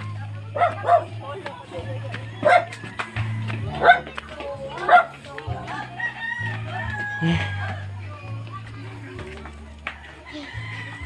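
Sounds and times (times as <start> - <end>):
background music with bass line: 0.0 - 11.0
rooster crowing: 6.0 - 7.9.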